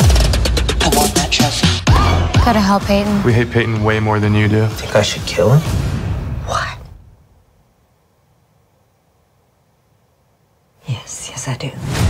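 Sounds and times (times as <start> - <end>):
trailer music: 0.0 - 7.1
woman speaking: 0.8 - 1.8, 2.4 - 3.2, 10.8 - 11.9.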